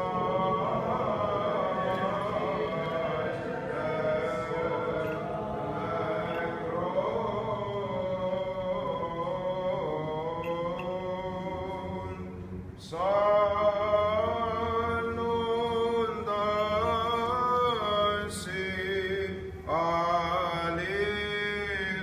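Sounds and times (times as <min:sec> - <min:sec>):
man chanting: 0:12.9 - 0:22.0.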